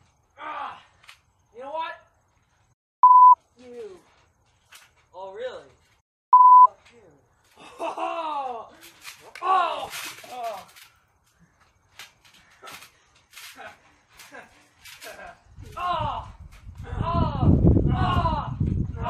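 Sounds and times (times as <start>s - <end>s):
short electronic beep: 3.0s - 3.4s, 6.3s - 6.7s
people shouting and groaning: 8.0s - 10.8s, 15.0s - 19.0s.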